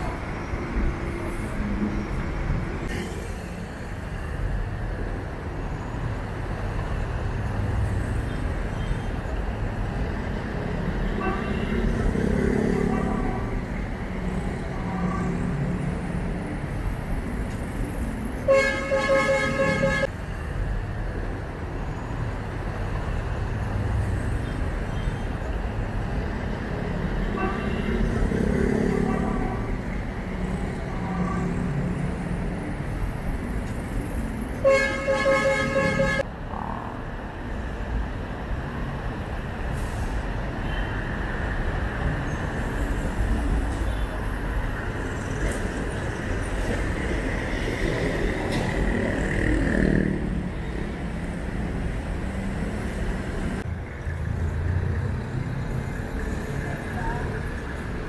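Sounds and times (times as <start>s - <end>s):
road traffic: 0.0s - 58.0s
vehicle horn blasts: 18.5s - 20.1s, 34.6s - 36.2s.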